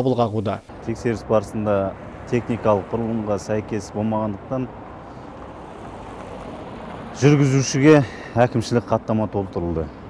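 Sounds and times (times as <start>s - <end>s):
roadside traffic rumble: 0.0s - 10.0s.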